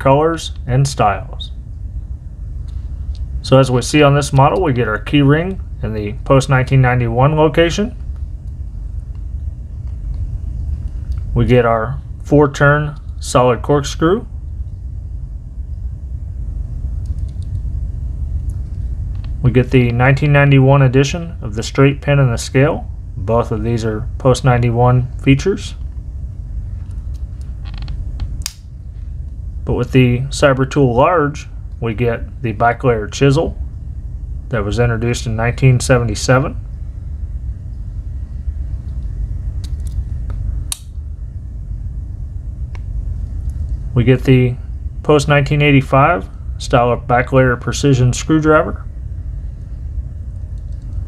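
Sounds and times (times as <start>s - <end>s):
low room rumble: 0.0s - 51.0s.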